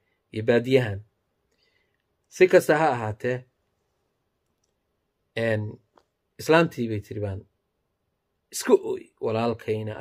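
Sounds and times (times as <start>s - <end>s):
man speaking: 0.3s - 1.2s, 2.3s - 3.6s, 5.3s - 7.6s, 8.5s - 10.0s.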